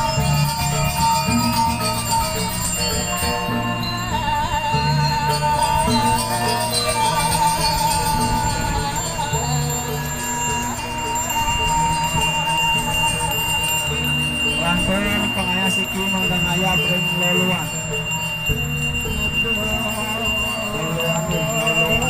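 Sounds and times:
ceremonial music with ringing bells: 0:00.0 - 0:22.0.

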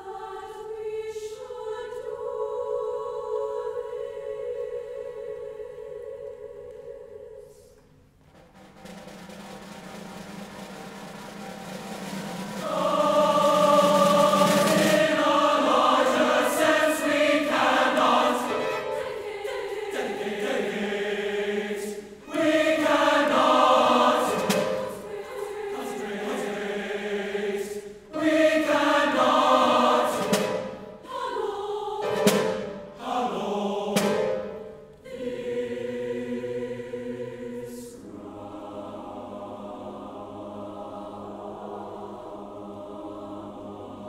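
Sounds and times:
choir singing sacred piece: 0:00.0 - 0:44.0
piano: 0:08.0 - 0:37.9
timpani: 0:08.0 - 0:44.0
string orchestra: 0:08.8 - 0:44.0.

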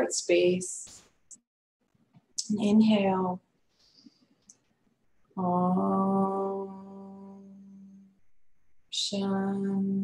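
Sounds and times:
woman chanting om: 0:05.3 - 0:08.2, 0:08.9 - 0:10.0.

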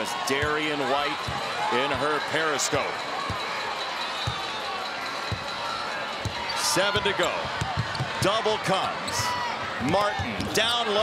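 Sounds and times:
arena crowd noise: 0:00.0 - 0:11.0
basketball bouncing on hardwood: 0:07.4 - 0:08.2.

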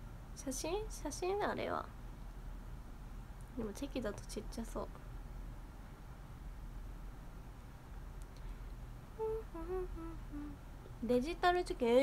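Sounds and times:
young woman humming softly: 0:09.2 - 0:10.7.

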